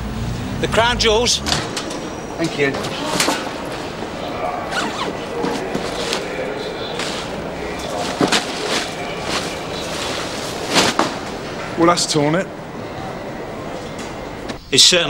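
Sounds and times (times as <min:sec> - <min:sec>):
indistinct background voices: 0:00.3 - 0:15.0
bag rustling and handling: 0:02.8 - 0:11.4.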